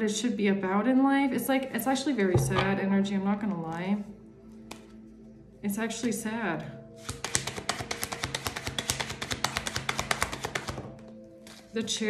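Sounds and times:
soft background music: 0.0 - 12.0
cards being shuffled: 7.0 - 11.7.

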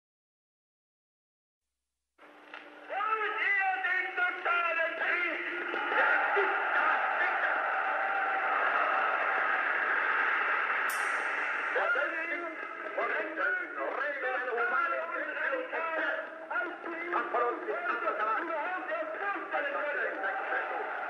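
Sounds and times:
sharp click: 10.9 - 11.5.

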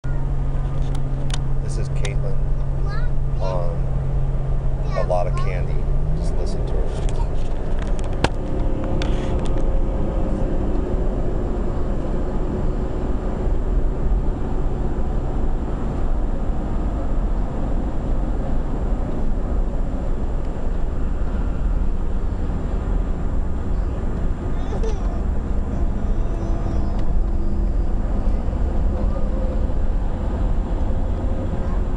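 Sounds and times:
car road and engine rumble: 0.0 - 31.9.

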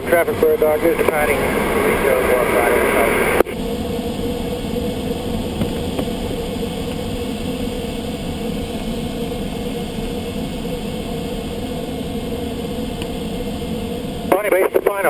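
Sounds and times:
airflow rushing in cockpit: 0.0 - 15.0
steady hum: 0.0 - 15.0.

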